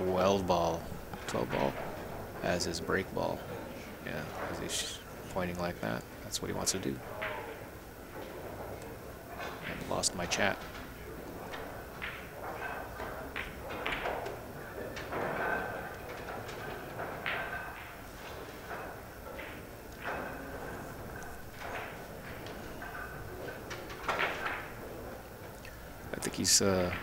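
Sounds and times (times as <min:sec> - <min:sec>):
pool balls clicking: 0:00.0 - 0:27.0
cue striking ball: 0:07.0 - 0:25.5.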